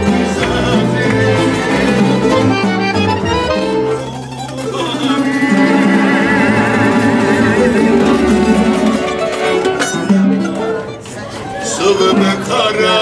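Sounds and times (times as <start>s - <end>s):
folk music on plucked strings: 0.0s - 13.0s.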